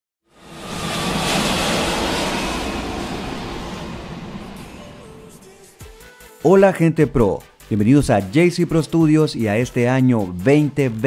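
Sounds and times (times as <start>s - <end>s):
noisy whoosh: 0.3s - 5.5s.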